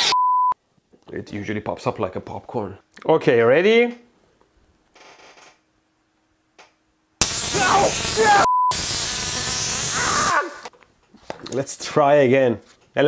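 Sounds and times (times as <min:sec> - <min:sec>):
censor bleep: 0:00.0 - 0:00.6, 0:08.4 - 0:08.8
tesla coil arc discharge hissing: 0:07.2 - 0:10.6
man yelling: 0:07.5 - 0:08.5.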